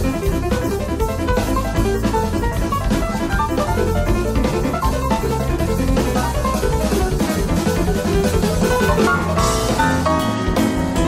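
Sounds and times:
bass guitar: 0.0 - 11.0
drum kit: 0.0 - 11.0
grand piano rapid runs: 0.0 - 11.0.

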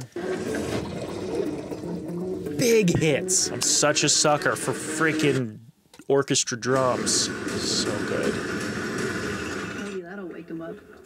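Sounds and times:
person speaking: 2.5 - 8.4
orchestral drums: 6.8 - 9.8.

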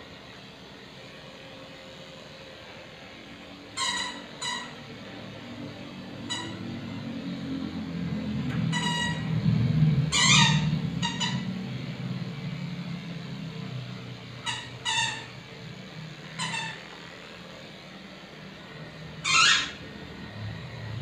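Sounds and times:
electric clippers humming: 0.0 - 21.0
dog whining: 3.8 - 4.9, 6.2 - 6.8, 10.1 - 11.6, 14.4 - 15.4, 16.3 - 17.0, 19.2 - 19.9.

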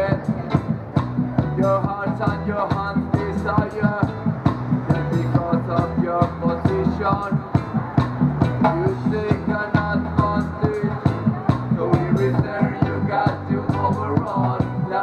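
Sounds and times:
live reggae instrumental music: 0.0 - 15.0.

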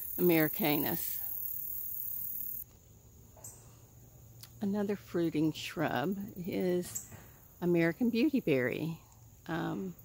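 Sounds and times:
high-pitched insect chorus: 0.0 - 2.6.

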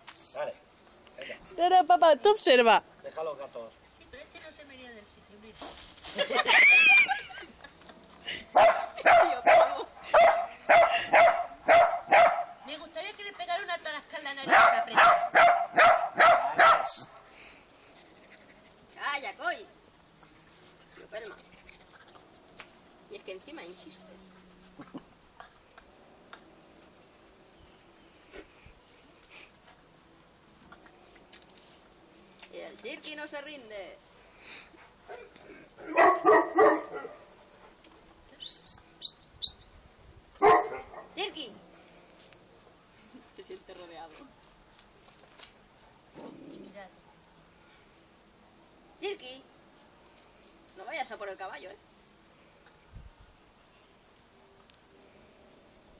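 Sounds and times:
birds chirping: 0.4 - 1.7, 6.9 - 29.2, 35.8 - 37.6, 38.2 - 39.8
small dog barking: 8.6 - 12.6, 14.4 - 17.1, 35.1 - 37.3, 40.4 - 41.2.

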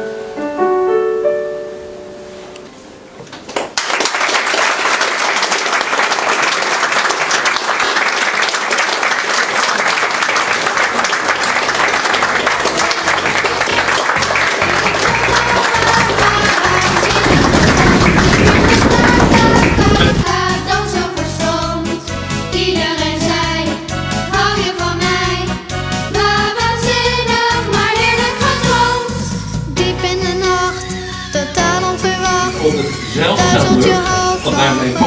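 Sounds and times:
music: 0.0 - 2.8, 12.6 - 35.0
audience applauding: 3.4 - 20.2.

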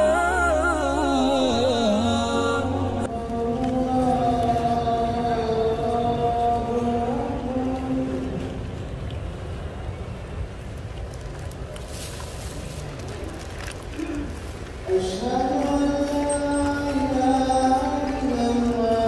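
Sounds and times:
steady low background noise: 0.0 - 19.0.

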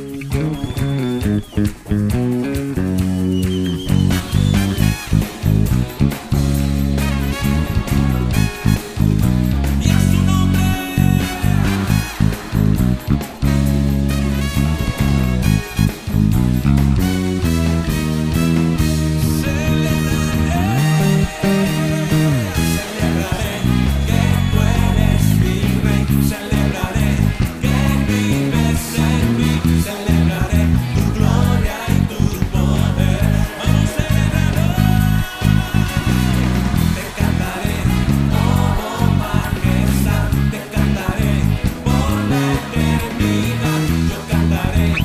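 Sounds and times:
electric bass played fingerstyle: 0.0 - 45.0
recorded band worship music: 0.0 - 45.0.

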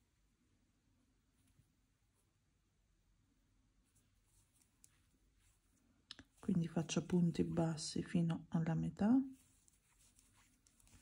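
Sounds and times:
crochet hook scratching yarn: 9.2 - 11.0.

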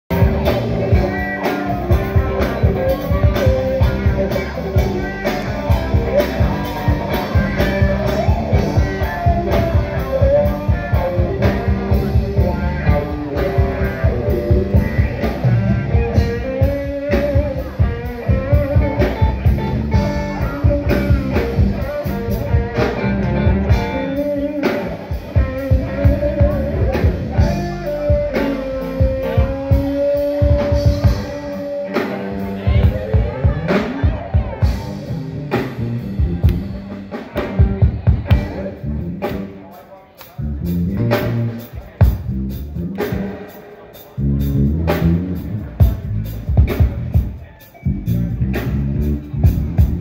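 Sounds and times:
lead guitar held notes: 0.1 - 43.2
drum kit beat: 0.1 - 50.0
electric guitars: 0.1 - 50.0
live rock band: 0.1 - 50.0.

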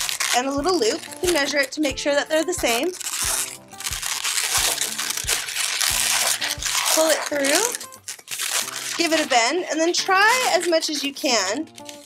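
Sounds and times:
background music with steady beat: 0.0 - 12.0
rubber balloon being twisted: 0.0 - 12.0.

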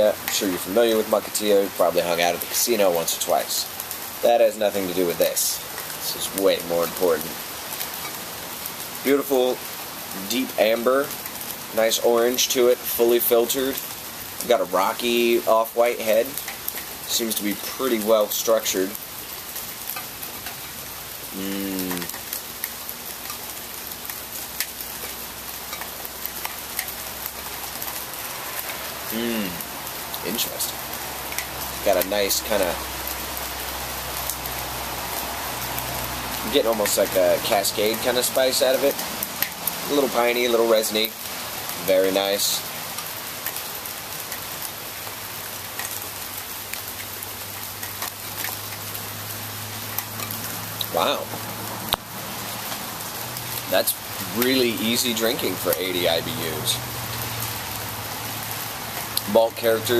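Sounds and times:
steady rain falling: 0.0 - 59.9.

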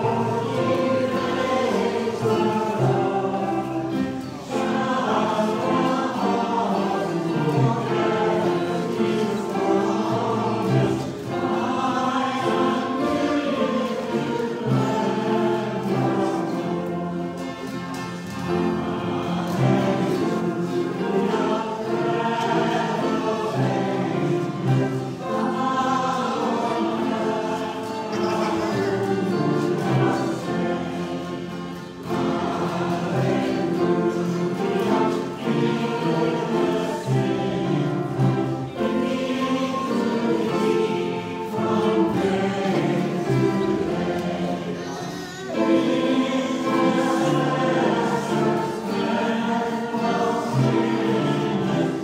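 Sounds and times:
choir singing a hymn: 0.0 - 52.0.

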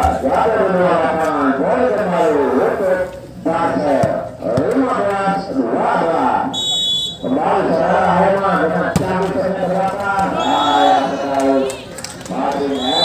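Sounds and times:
man talking: 0.0 - 6.6, 7.2 - 13.0
referee's whistle blast: 6.5 - 7.3, 10.4 - 11.1, 12.7 - 13.0.

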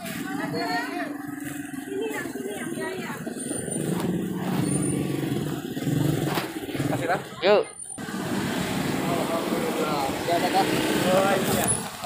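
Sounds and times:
indistinct talking: 0.0 - 11.8
motorcycle engine idling: 0.0 - 12.0.

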